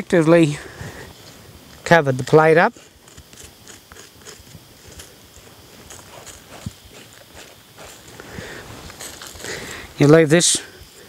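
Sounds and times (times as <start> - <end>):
soil scratching and rustling: 0.0 - 11.0.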